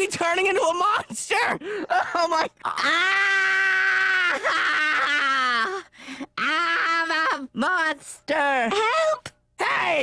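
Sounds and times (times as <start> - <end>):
cartoon character screaming: 2.7 - 5.8.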